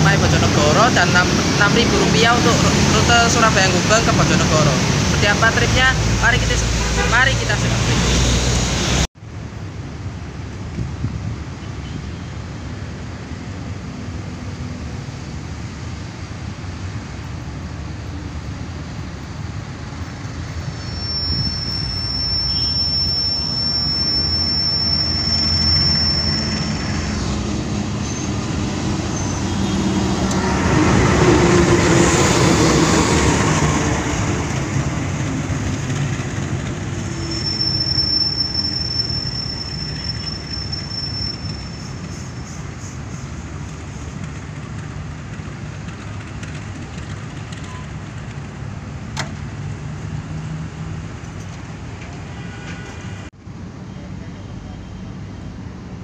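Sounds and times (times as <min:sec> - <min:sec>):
train rumbling past: 0:00.0 - 0:56.0
high squeal from train wheels: 0:20.1 - 0:44.4, 0:45.9 - 0:48.0, 0:52.1 - 0:55.6.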